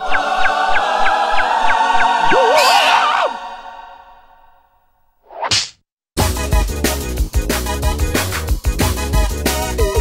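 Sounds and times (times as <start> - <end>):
cartoon cry: 2.3 - 3.4
upbeat music: 6.2 - 10.0.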